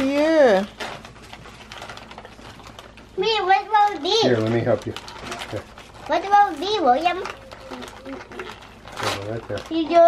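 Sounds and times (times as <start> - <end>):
wrapping paper crinkling: 0.0 - 10.0.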